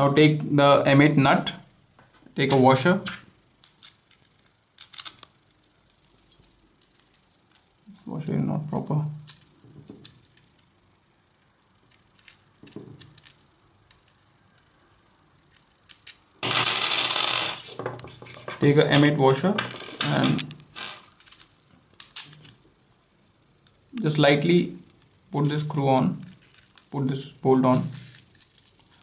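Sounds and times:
metal parts rattling: 0:03.6 - 0:07.7, 0:12.1 - 0:14.1, 0:19.6 - 0:22.5, 0:25.4 - 0:26.9, 0:27.6 - 0:29.0
small steel parts clicking: 0:03.6 - 0:07.8, 0:09.2 - 0:10.7, 0:11.8 - 0:14.8, 0:15.5 - 0:16.3, 0:21.1 - 0:22.6, 0:25.0 - 0:27.0, 0:27.7 - 0:29.0.

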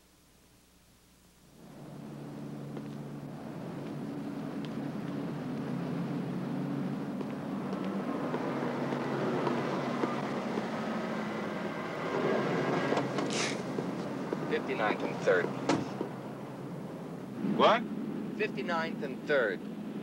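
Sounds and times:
city street traffic: 0:01.5 - 0:20.0
short hiss: 0:13.3 - 0:13.6.

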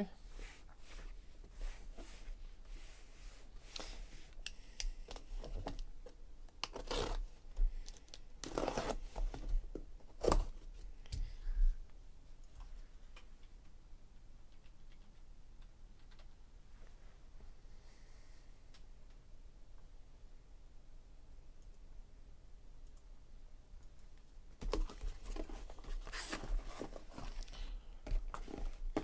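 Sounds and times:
blade slitting packing tape: 0:06.6 - 0:07.2
tape tearing: 0:06.6 - 0:07.2, 0:08.4 - 0:09.0
cardboard scraping: 0:08.4 - 0:09.5, 0:24.7 - 0:27.5.

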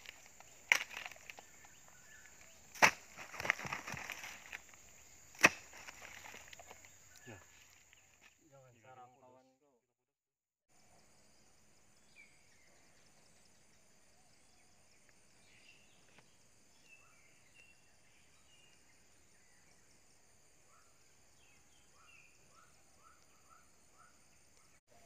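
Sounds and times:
high insect drone: 0:00.0 - 0:08.2
bird chirps: 0:06.6 - 0:08.2, 0:12.0 - 0:19.8, 0:20.7 - 0:25.0.

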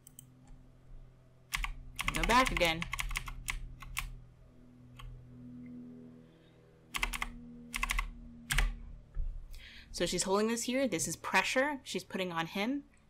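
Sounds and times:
faint low hum: 0:00.0 - 0:13.0
keyboard keys clicking: 0:01.5 - 0:04.1, 0:07.0 - 0:08.7.

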